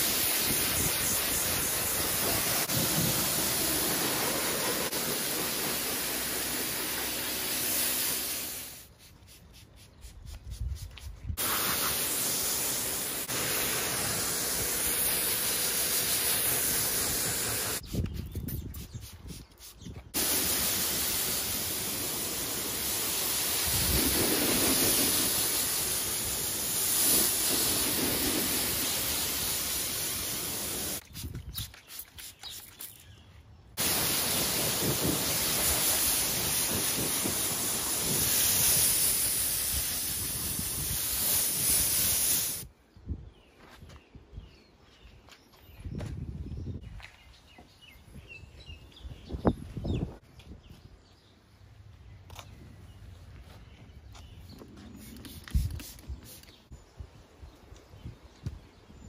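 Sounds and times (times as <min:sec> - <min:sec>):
pressure washer spraying water: 0:00.0 - 0:09.0, 0:11.4 - 0:17.8, 0:20.2 - 0:31.0, 0:33.8 - 0:42.7.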